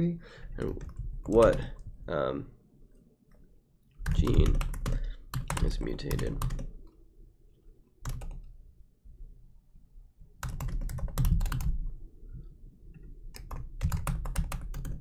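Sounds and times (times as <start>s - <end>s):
typing on a computer keyboard: 0.6s - 1.8s, 4.0s - 6.8s, 8.0s - 8.5s, 10.4s - 11.9s, 13.3s - 15.0s.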